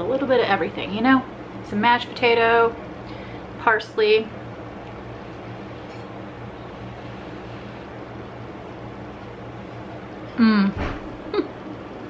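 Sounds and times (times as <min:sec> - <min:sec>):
fan hum and hiss: 0:00.0 - 0:12.0.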